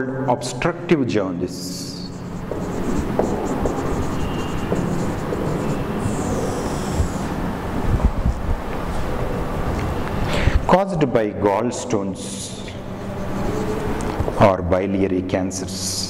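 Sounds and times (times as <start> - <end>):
rumbling background noise: 0.0 - 16.0
marker squeaking on whiteboard: 1.5 - 7.4, 12.6 - 14.4.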